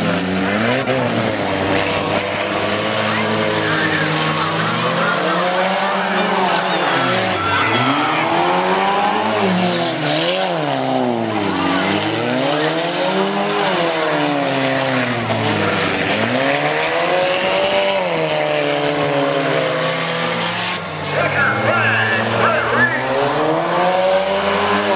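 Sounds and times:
car engines revving: 0:00.0 - 0:24.9
people's voices: 0:00.5 - 0:24.9.

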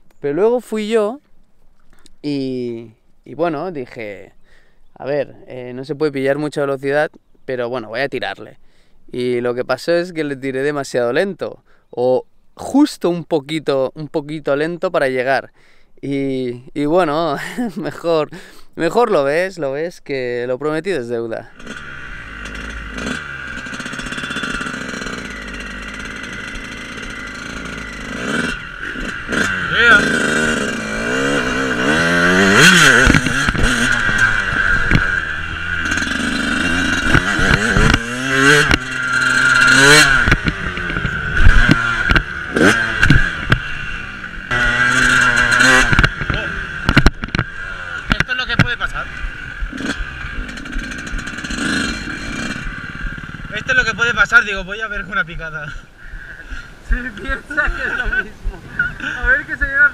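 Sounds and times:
motocross bike engine revving: 0:21.4 - 0:59.9.

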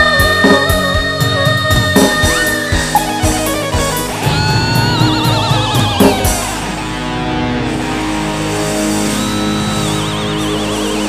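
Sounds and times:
keyboard instrumental with drum beat: 0:00.0 - 0:11.0
keyboard lead note with vibrato: 0:02.2 - 0:07.1.

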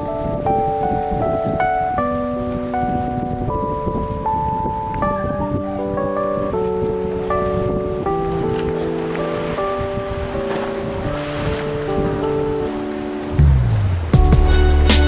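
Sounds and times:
falling low glide: 0:00.0 - 0:14.8.

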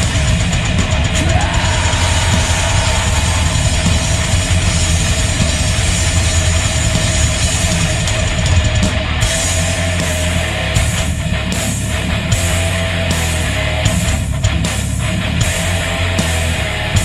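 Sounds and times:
heavy metal band playing: 0:00.0 - 0:17.0.

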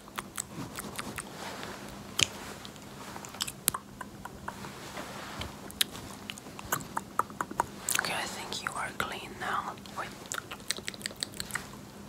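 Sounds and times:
tongue and lip clicks: 0:00.0 - 0:01.3, 0:02.2 - 0:04.7, 0:05.7 - 0:08.8, 0:09.8 - 0:11.8
person whispering: 0:06.7 - 0:10.3.

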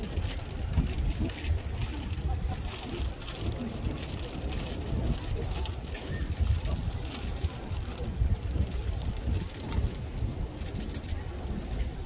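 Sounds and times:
faint murmur of voices: 0:00.0 - 0:12.0
wind rumble on microphone: 0:00.0 - 0:12.0.

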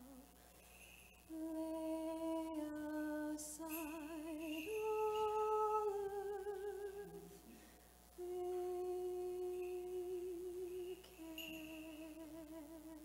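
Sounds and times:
person chanting long-held notes: 0:08.2 - 0:13.0.

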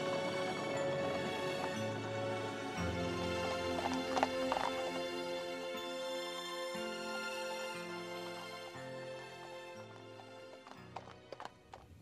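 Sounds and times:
horse hoofbeats: 0:00.0 - 0:05.4, 0:08.3 - 0:12.0
soft background music: 0:00.0 - 0:12.0.

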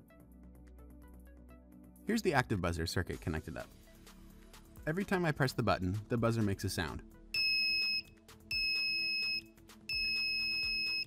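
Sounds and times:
faint background music: 0:00.0 - 0:11.0
high-pitched buzzer beep: 0:07.4 - 0:11.0.

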